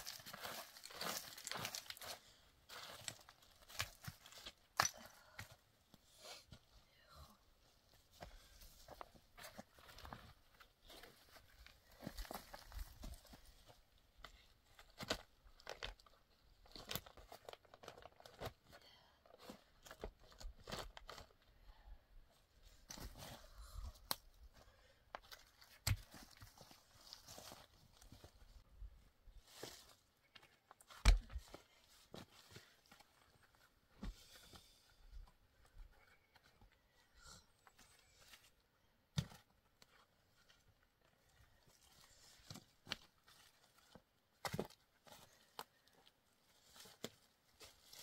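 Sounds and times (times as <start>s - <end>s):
footsteps on leaves and gravel: 0.0s - 4.3s.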